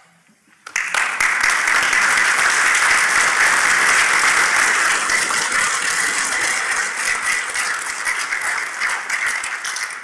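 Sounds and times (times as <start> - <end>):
audience applauding: 0.6 - 10.0.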